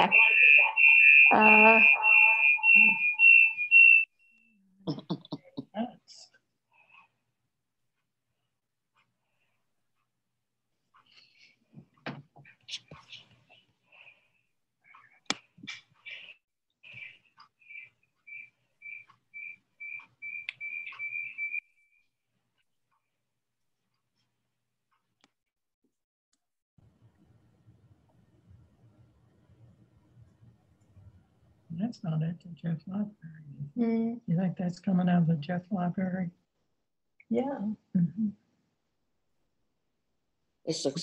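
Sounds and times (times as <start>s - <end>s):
echoing voice: 0.0s - 3.4s
high-pitched feedback ring: 0.0s - 4.1s.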